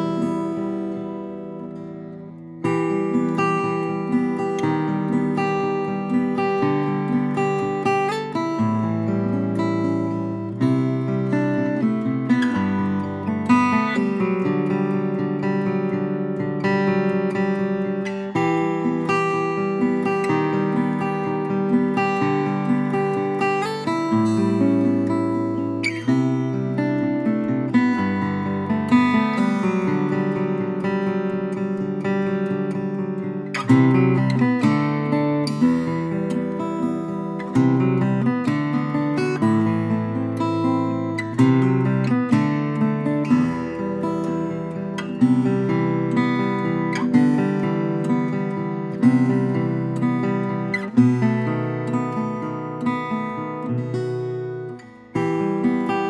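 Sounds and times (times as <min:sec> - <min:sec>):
fingerpicked acoustic guitar: 0:00.0 - 0:56.0.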